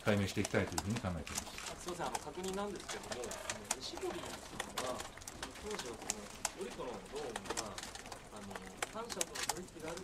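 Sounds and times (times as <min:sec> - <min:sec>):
man asking a question: 0:00.0 - 0:01.6.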